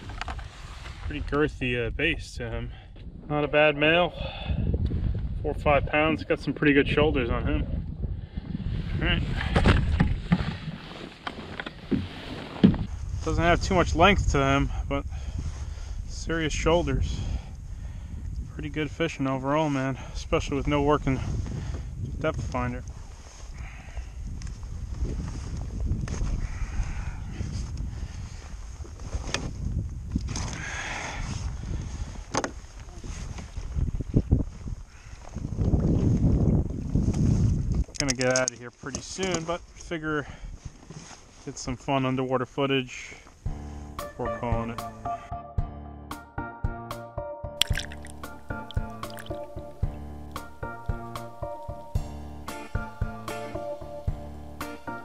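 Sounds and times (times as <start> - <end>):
wind rumbling on microphone: 0.0 - 41.0
tackle clicks: 47.6 - 49.5.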